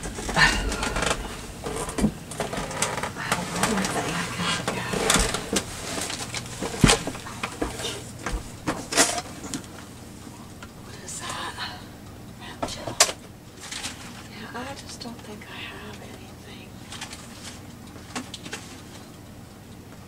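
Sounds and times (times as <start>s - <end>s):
clicks and knocks of handling: 16.9s - 19.2s.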